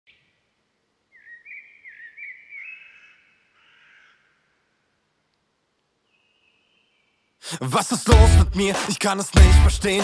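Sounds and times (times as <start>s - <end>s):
bird warbling song: 0.1s - 4.7s, 6.0s - 7.4s.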